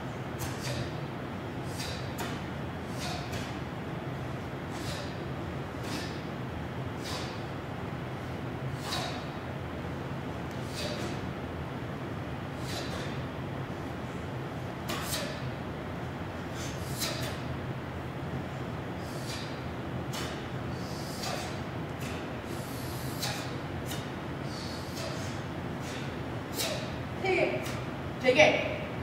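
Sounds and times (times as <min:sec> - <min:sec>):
low hall hum: 0:00.0 - 0:29.0.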